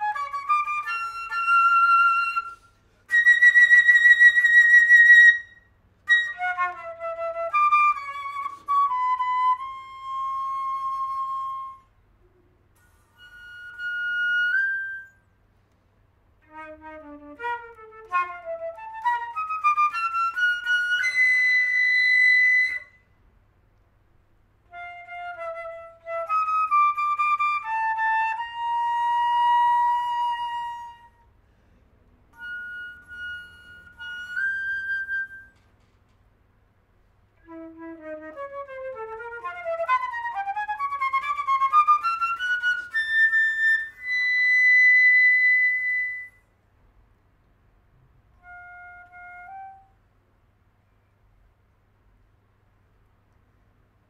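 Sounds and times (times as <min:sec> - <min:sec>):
solo flute playing: 0:00.0 - 0:15.4, 0:16.4 - 0:23.2, 0:24.6 - 0:31.4, 0:32.3 - 0:35.7, 0:37.4 - 0:46.6, 0:48.3 - 0:50.1.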